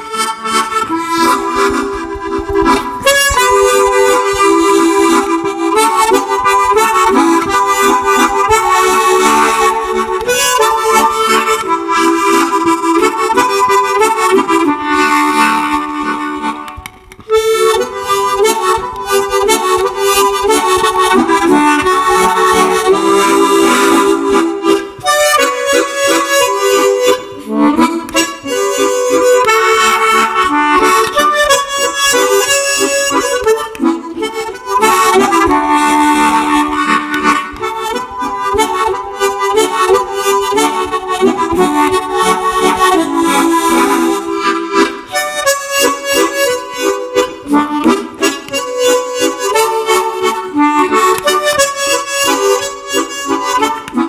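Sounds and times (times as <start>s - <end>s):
tremolo harmonica melody: 0.0s - 54.0s.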